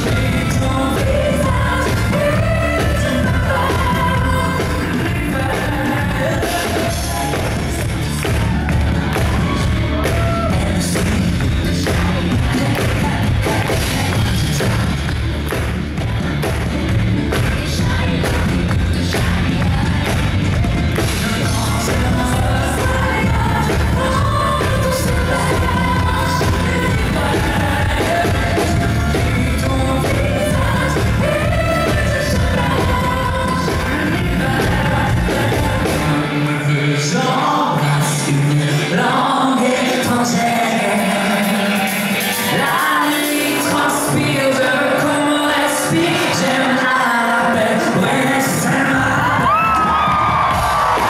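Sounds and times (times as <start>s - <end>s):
man singing: 0.0s - 8.3s, 9.9s - 14.8s, 21.0s - 51.0s
live pop band playing: 0.0s - 51.0s.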